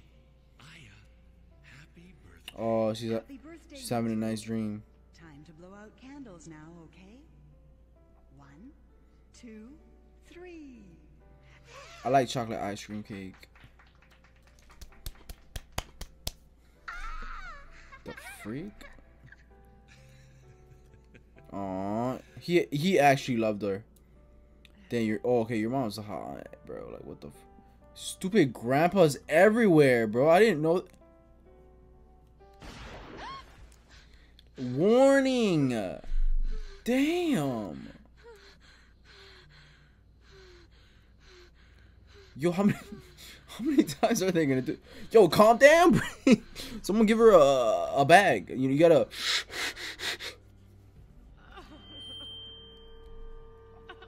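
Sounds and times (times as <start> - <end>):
woman hyperventilating: 11.7 - 12.1
hand claps: 12.9 - 16.4.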